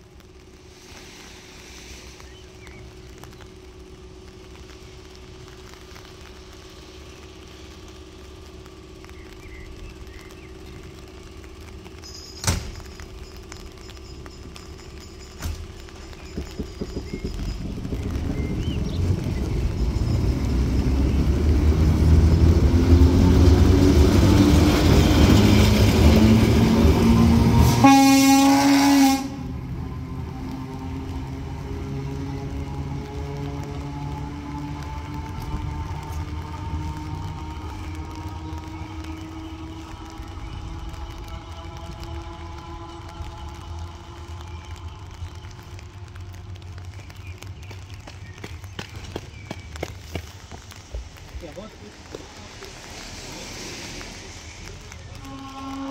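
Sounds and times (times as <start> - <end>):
electric railcar running on rails: 0.0 - 55.9
railcar horn blast: 24.8 - 31.0, 33.1 - 45.2, 55.2 - 55.9.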